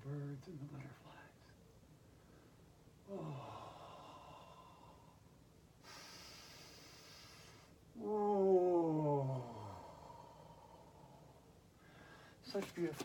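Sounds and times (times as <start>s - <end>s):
woman sighing: 3.1s - 4.4s
woman breathing in: 5.8s - 7.8s, 11.8s - 12.4s.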